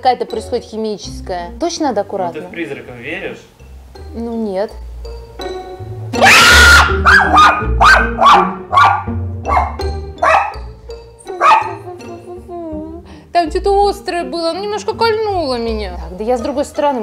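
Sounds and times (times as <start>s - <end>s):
background music with bass line: 0.4s - 17.0s
dog barking: 6.8s - 10.7s, 11.4s - 11.8s.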